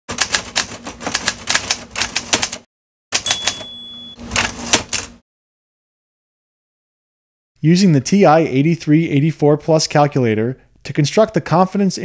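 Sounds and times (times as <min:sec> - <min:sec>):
typewriter keys clattering: 0:00.1 - 0:02.6, 0:03.2 - 0:05.1
typewriter bell ding: 0:03.2 - 0:04.2.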